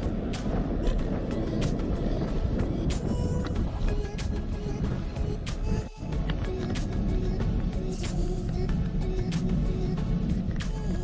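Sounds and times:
bicycle rolling rumble: 0:00.0 - 0:11.0
wind on microphone: 0:00.0 - 0:11.0.

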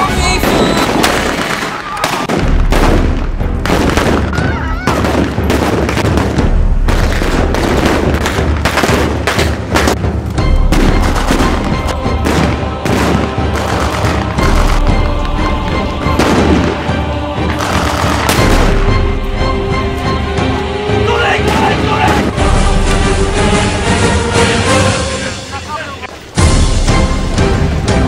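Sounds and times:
background music: 0:00.0 - 0:28.0.

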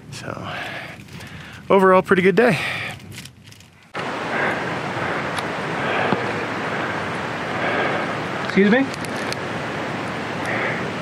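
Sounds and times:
wind rushing over microphone: 0:04.0 - 0:11.0.

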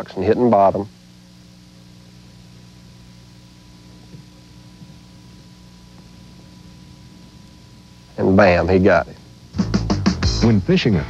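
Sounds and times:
low electrical hum and hiss: 0:00.0 - 0:11.0.

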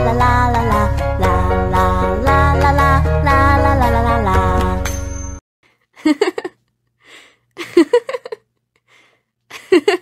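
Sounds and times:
person breathing: 0:07.0 - 0:07.6, 0:08.8 - 0:09.4.

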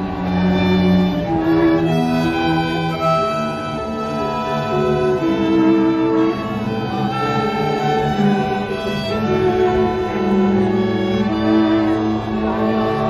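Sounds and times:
string orchestra playing bowed notes: 0:00.0 - 0:13.0.

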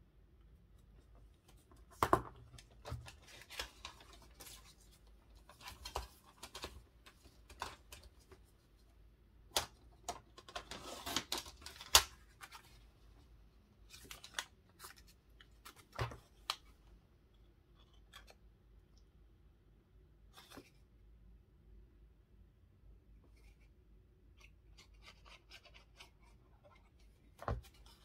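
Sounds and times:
paper rustling: 0:02.6 - 0:08.4, 0:13.9 - 0:16.6.

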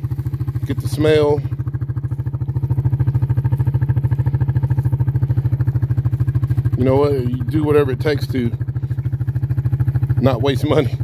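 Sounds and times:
atv engine idling: 0:00.0 - 0:11.0.

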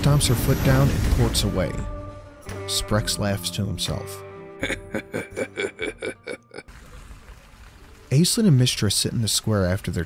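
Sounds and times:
man laughing: 0:04.6 - 0:06.7.

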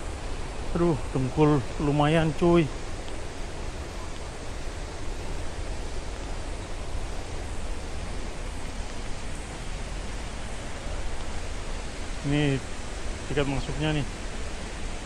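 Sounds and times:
waterfall rushing: 0:00.0 - 0:15.0.

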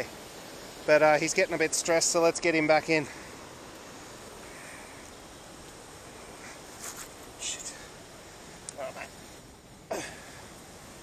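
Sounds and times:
riverside background hiss: 0:00.0 - 0:11.0.

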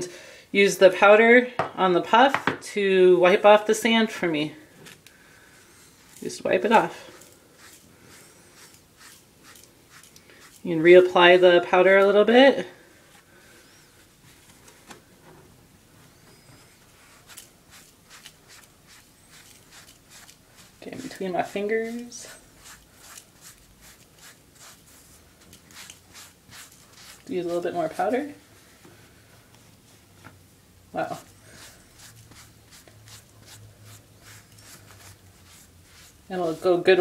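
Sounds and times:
powder puff rubbing a hand: 0:07.6 - 0:10.6.

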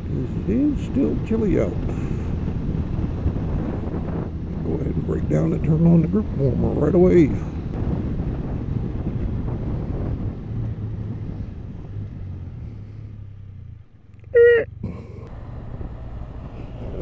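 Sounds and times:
vehicle engine running: 0:00.0 - 0:17.0.

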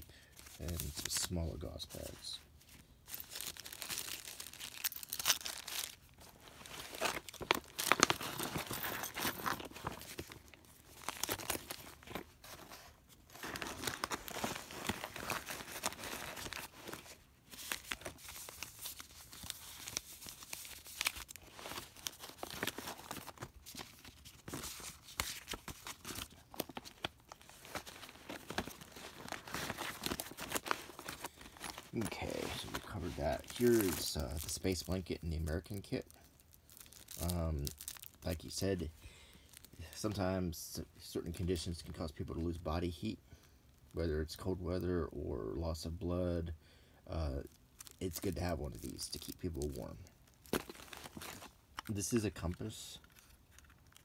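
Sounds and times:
paper and plastic rustling: 0:00.4 - 0:38.8, 0:47.8 - 0:54.0.

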